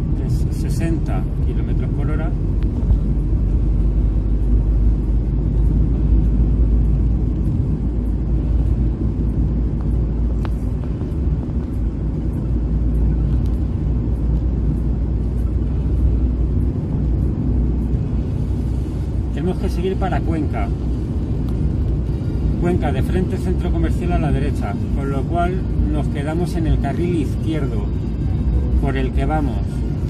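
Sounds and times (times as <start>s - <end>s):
car engine and tyre rumble: 0.0s - 30.0s.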